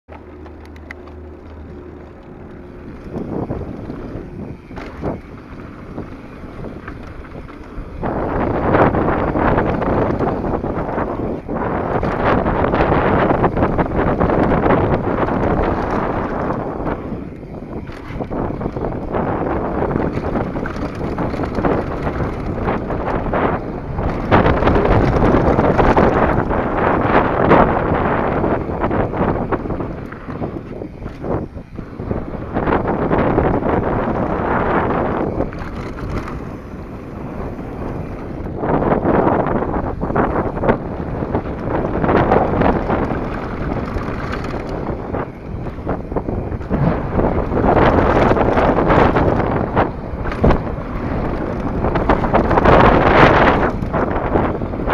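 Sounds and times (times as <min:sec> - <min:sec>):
bike rattling over bumps: 0:00.1 - 0:54.9
bike tyre roar on dirt: 0:00.1 - 0:54.9
wind buffeting microphone: 0:00.1 - 0:54.9.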